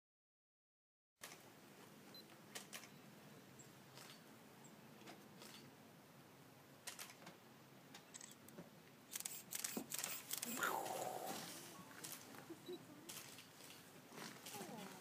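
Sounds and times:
low steady hiss: 1.2 - 15.0.

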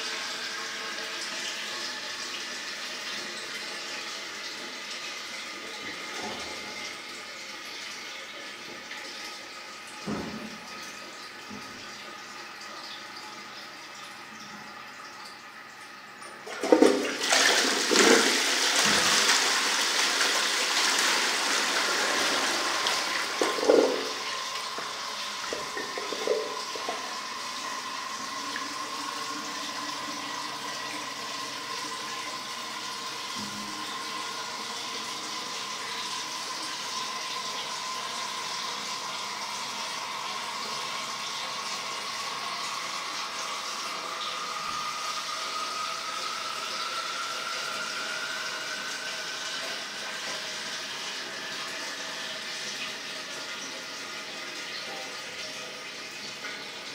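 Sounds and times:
cistern refilling: 0.0 - 56.9
toilet flushing water rush: 0.0 - 56.9.

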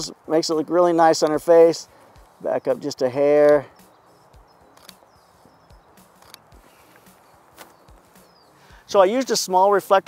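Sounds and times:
faint bird chirps: 3.5 - 9.0
soft clicks: 4.7 - 5.0, 6.2 - 7.7.

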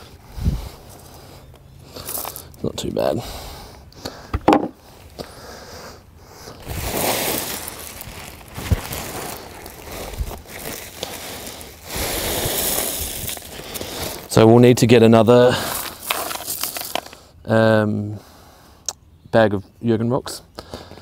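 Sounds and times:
knocks: 4.3 - 4.8
sack rustling: 6.6 - 14.4
small rocks pouring into plastic box: 15.7 - 17.1.

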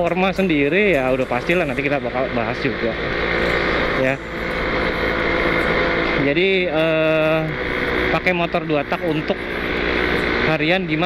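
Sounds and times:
two-stroke motorcycle engine running: 0.0 - 11.0.

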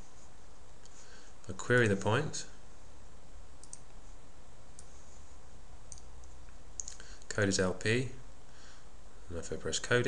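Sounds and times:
steady low hum: 0.0 - 10.0
faint computer mouse clicks: 3.6 - 4.0.

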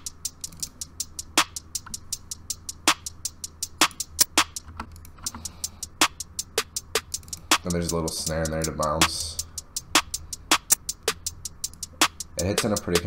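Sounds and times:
drum machine clap: 0.0 - 4.7, 5.3 - 13.0
drum machine hi-hats ticking: 0.0 - 13.0.

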